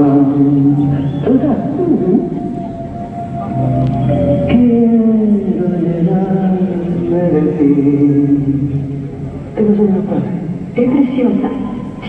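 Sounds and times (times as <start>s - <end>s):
gliding melodic line: 2.3s - 5.4s
orchestral music: 2.4s - 5.2s.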